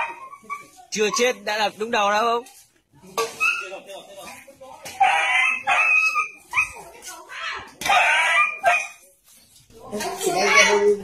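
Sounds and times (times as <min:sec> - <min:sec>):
dog yelping in distress: 0:05.0 - 0:06.8, 0:07.9 - 0:09.0.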